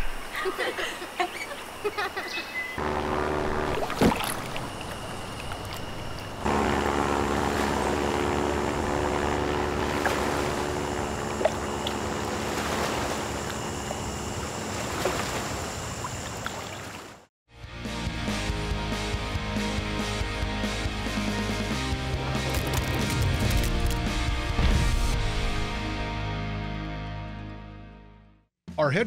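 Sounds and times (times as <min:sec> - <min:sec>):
propeller plane engine droning: 0:02.8 - 0:16.7
music: 0:17.5 - 0:29.0.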